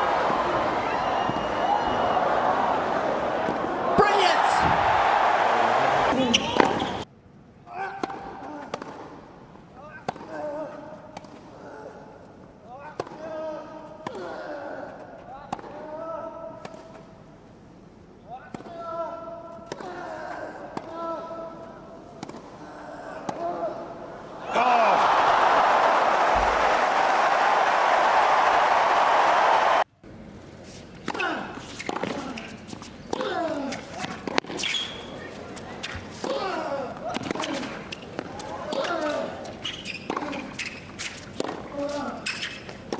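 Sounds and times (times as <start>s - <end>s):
crowd applause and cheering: 0.0s - 6.2s, 24.5s - 29.9s.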